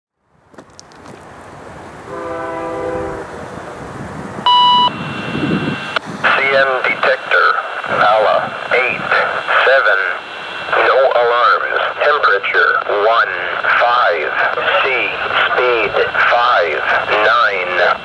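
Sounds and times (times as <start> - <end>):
chord of steady tones: 1.8 - 6.0
short steady beep: 4.5 - 5.2
tinny automated voice on radio: 6.2 - 18.0.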